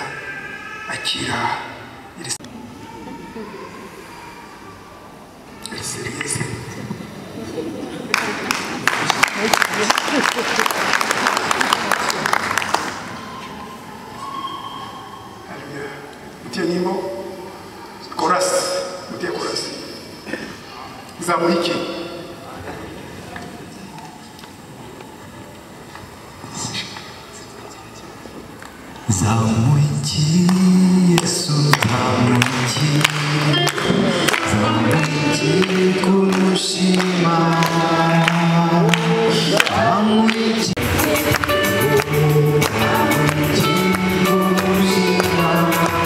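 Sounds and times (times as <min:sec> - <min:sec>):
faint voices: 0:00.0 - 0:46.0
sharp claps or knocks: 0:08.1 - 0:13.0, 0:31.2 - 0:39.7
applause: 0:08.1 - 0:13.2, 0:31.2 - 0:44.0
congregation singing a hymn: 0:29.1 - 0:46.0.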